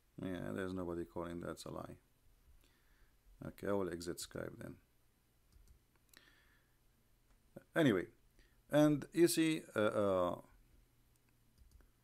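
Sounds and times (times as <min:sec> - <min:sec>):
faint computer mouse clicks: 0:05.5 - 0:06.2, 0:11.1 - 0:11.9.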